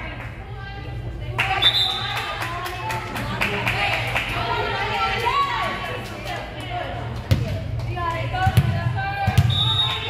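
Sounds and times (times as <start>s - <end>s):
voices of players and spectators: 0.0s - 10.0s
volleyball bouncing on gym floor: 7.2s - 10.0s
referee's whistle: 9.4s - 10.0s.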